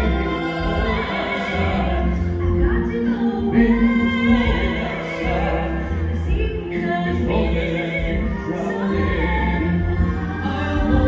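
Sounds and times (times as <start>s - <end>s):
choir singing held notes: 0.0s - 2.6s.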